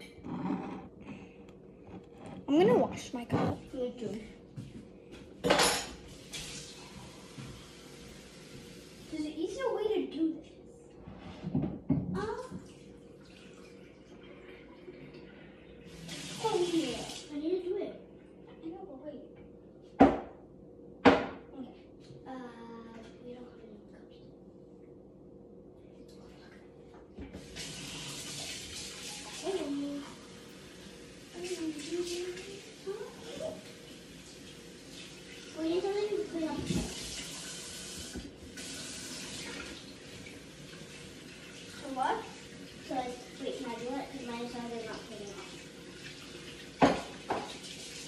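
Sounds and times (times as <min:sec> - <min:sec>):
dishes clattering in a sink: 0:00.0 - 0:03.8, 0:05.4 - 0:07.6, 0:11.2 - 0:13.6, 0:20.0 - 0:20.4, 0:21.0 - 0:21.5, 0:35.2 - 0:37.3, 0:44.4 - 0:47.9
water running into sink: 0:05.5 - 0:09.6, 0:11.5 - 0:17.5, 0:27.2 - 0:48.0.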